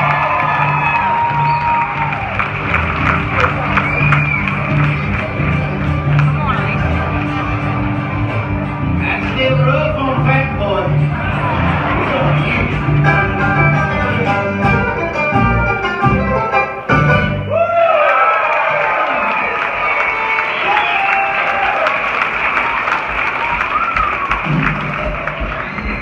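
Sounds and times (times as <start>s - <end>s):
audience applause and cheering: 0.0s - 15.1s, 17.3s - 26.0s
bluegrass band playing: 0.0s - 17.6s.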